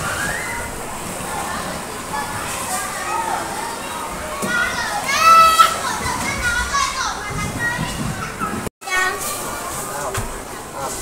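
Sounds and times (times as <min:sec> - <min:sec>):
children playing and calling out: 0:00.0 - 0:09.7.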